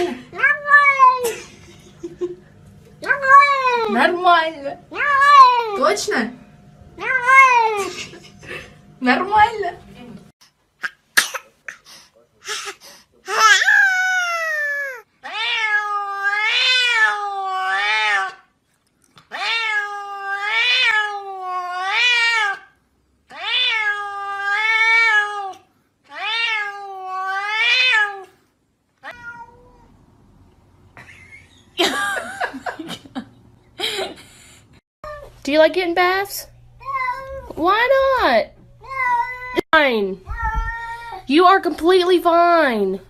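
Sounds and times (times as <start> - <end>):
cat meowing: 0.4 - 1.2, 7.0 - 7.8, 13.3 - 18.4, 19.3 - 22.7, 23.3 - 28.3, 29.0 - 29.9, 36.8 - 37.5, 38.8 - 39.6, 40.2 - 41.3.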